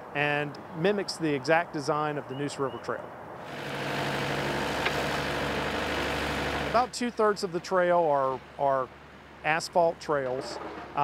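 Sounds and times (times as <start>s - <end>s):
excavator diesel engine running: 3.4s - 9.6s.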